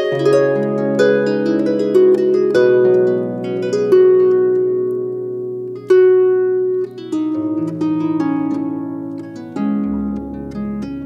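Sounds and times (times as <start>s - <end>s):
harp plucked: 0.0s - 11.0s.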